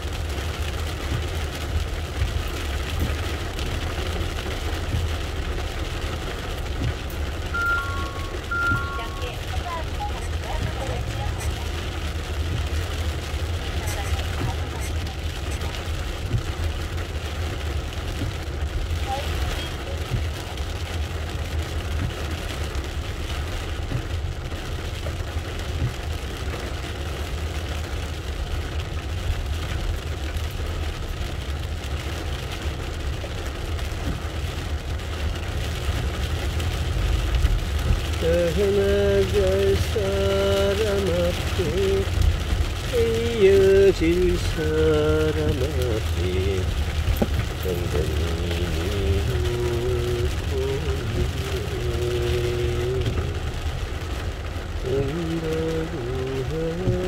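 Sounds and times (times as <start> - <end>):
car driving on wet road: 0.0 - 57.0
heavy rain on car roof: 0.0 - 57.0
pitched voice or tune: 7.6 - 11.6.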